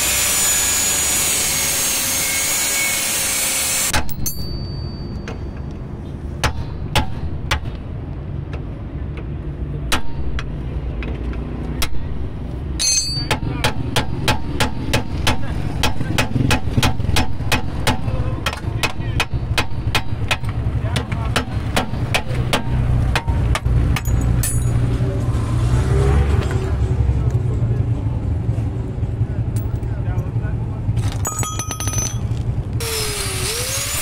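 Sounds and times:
hammer striking metal drift: 0.2s - 5.7s, 6.4s - 7.8s, 11.8s - 18.2s.

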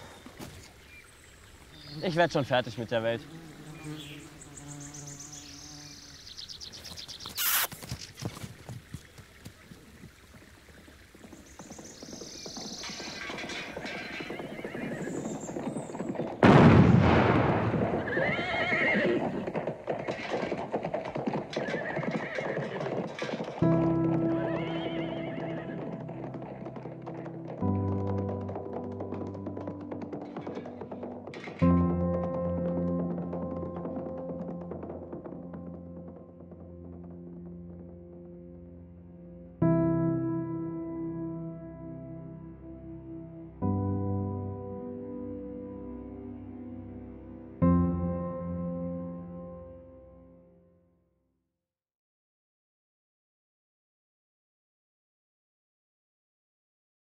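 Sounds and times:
hoofbeats: 6.7s - 16.4s, 17.7s - 38.5s
horse neighing: 13.4s - 15.3s, 18.0s - 20.5s, 21.5s - 23.3s
slow music of held chords: 38.1s - 50.8s.

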